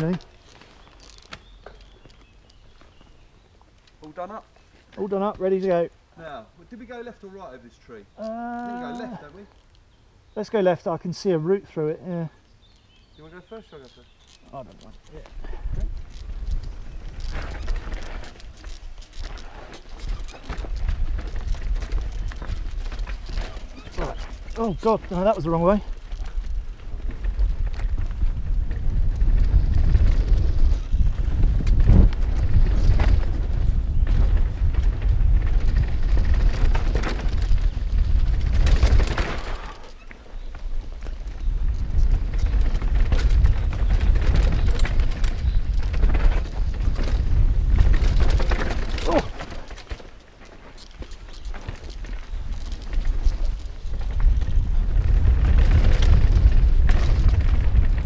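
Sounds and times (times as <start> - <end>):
wind buffeting camera: 12.6 - 58.0
bike knocks and rattles: 14.8 - 58.0.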